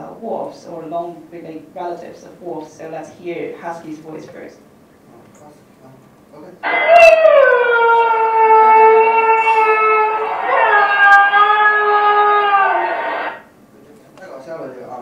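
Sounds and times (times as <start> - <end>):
dog howling: 6.6 - 13.5.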